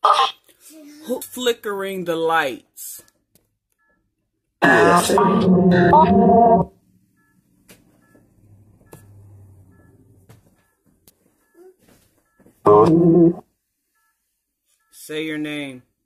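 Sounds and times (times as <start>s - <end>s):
loud voice: 4.6s - 5.5s.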